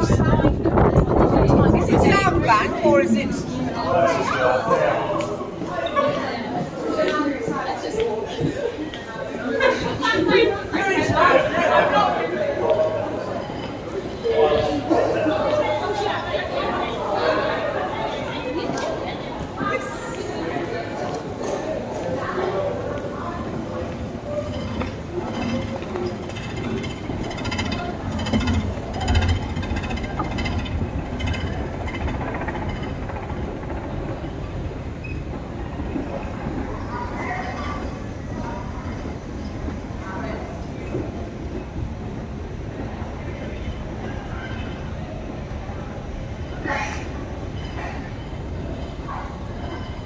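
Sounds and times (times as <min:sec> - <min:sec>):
escalator rumble: 0:00.0 - 0:06.4, 0:09.4 - 0:50.0
echoing voices of passers-by: 0:00.0 - 0:50.0.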